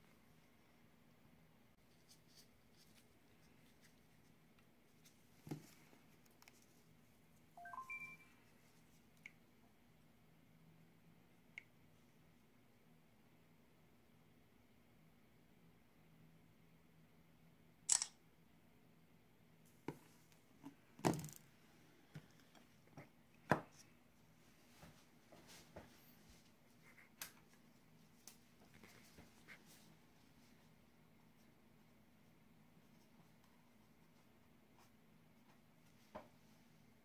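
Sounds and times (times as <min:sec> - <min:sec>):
phone camera shutter click: 0:17.9 - 0:18.2.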